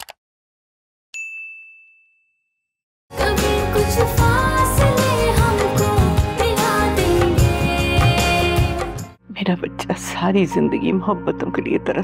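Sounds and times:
notification bell ding: 1.2s - 2.6s.

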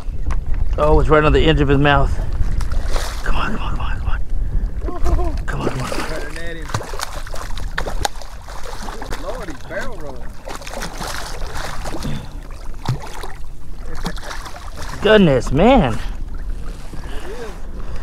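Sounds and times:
fish splashing at surface: 5.6s - 15.1s.

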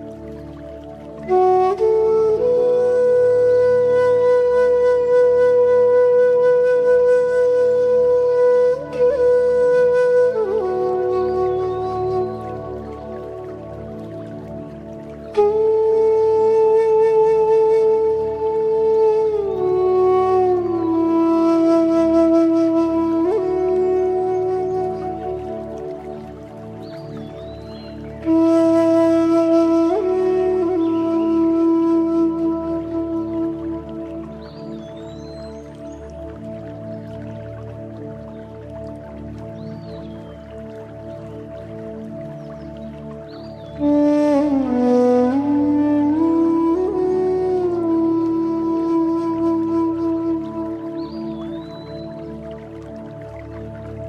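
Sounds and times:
bamboo flute long note: 0.0s - 54.0s.

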